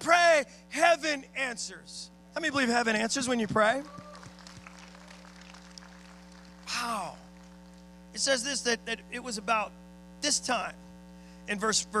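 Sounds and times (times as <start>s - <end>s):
steady low hum: 0.0s - 12.0s
light claps: 4.0s - 6.8s.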